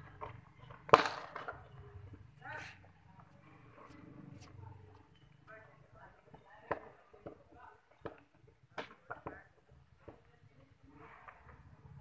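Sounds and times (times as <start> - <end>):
faint distant voices: 0.4 - 12.0.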